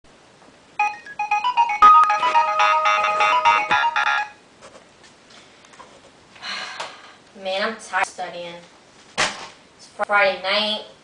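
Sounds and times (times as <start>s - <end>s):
electronic ringtone melody: 0.8s - 4.4s.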